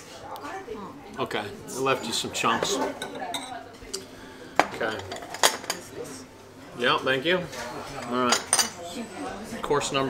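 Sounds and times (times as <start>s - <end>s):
utensils clinking against dishes: 1.9s - 5.9s, 7.4s - 9.1s.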